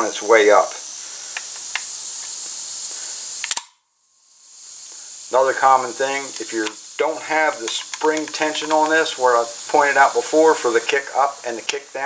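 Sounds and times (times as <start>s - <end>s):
steady hiss: 0.0s - 12.0s
metallic clicks of shotgun action: 3.4s - 3.8s, 7.7s - 8.9s.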